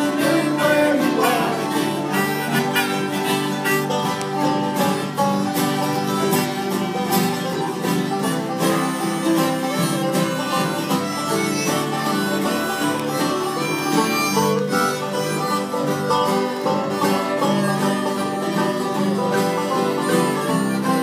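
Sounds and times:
acoustic guitars strumming and picking: 0:00.0 - 0:21.0.

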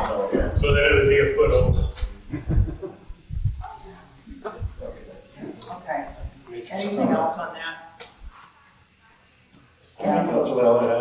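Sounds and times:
people chuckling softly: 0:02.2 - 0:03.3.

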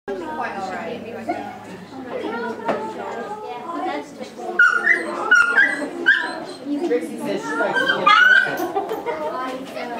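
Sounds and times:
background chatter: 0:00.1 - 0:09.9
dog whimpering and yipping: 0:04.6 - 0:06.8, 0:07.5 - 0:08.6.

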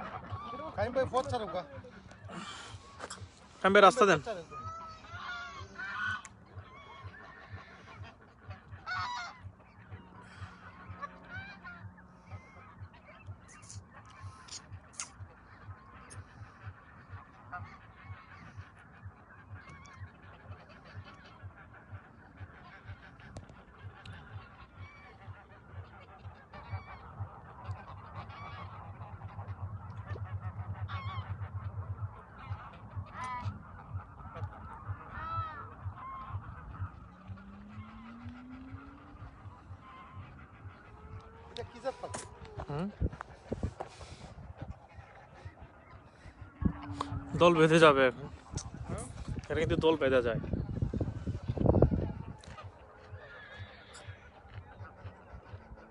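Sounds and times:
geese honking: 0:00.0 - 0:55.9.

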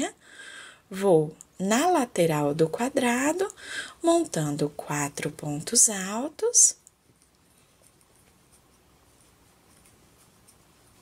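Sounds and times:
twine rustling with crochet hook: 0:04.2 - 0:11.0.

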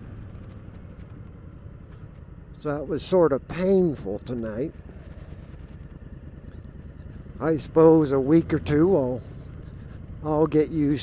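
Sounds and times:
motorcycle engine running: 0:00.0 - 0:11.0
road noise: 0:00.0 - 0:11.0.

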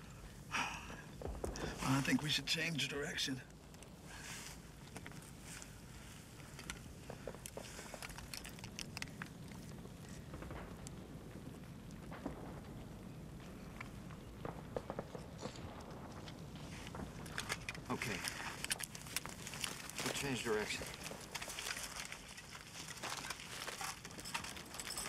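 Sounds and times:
small clicks and knocks: 0:06.4 - 0:11.0.

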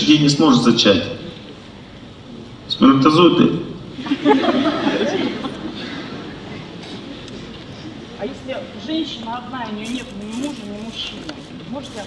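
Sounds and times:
murmur of audience: 0:00.0 - 0:12.0.

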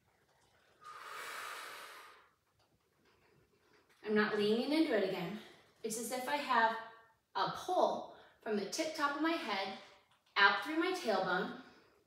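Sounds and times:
woman breathing out: 0:00.8 - 0:02.4.

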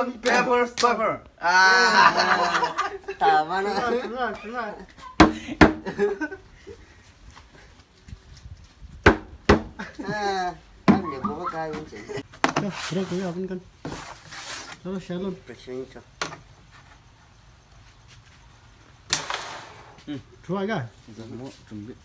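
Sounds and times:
young men laughing: 0:01.4 - 0:07.0, 0:09.7 - 0:12.3
plastic container knocking on head: 0:05.2 - 0:05.8, 0:09.0 - 0:09.8.

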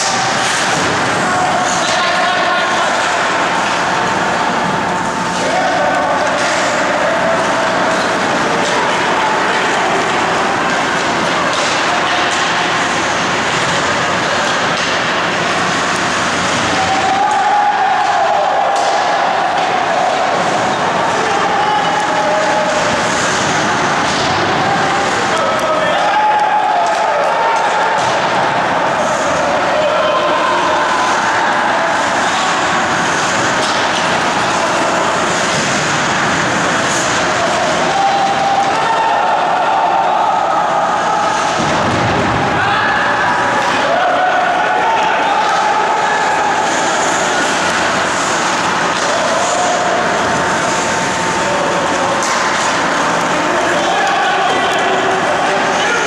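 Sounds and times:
arena crowd noise: 0:00.0 - 0:56.0
indistinct voices: 0:00.0 - 0:56.0.

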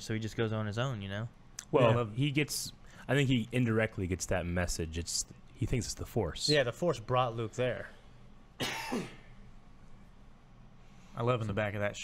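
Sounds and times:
man coughing: 0:08.6 - 0:09.4.

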